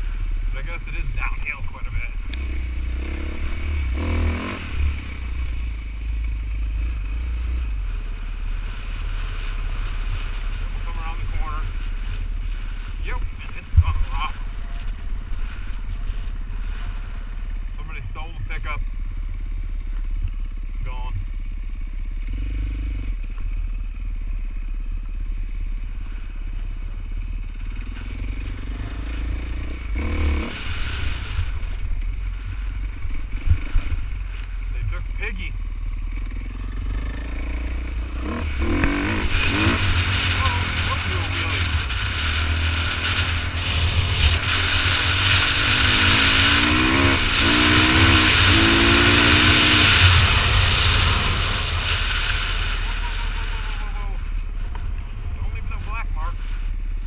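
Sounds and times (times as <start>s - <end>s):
dirt bike engine: 0.0s - 57.0s.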